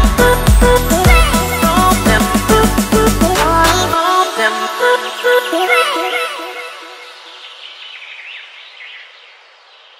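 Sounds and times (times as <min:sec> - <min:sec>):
small birds chirping: 0:07.0 - 0:09.9.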